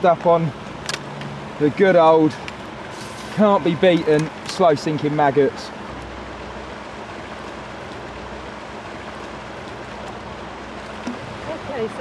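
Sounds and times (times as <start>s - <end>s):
woman speaking: 11.4s - 12.0s.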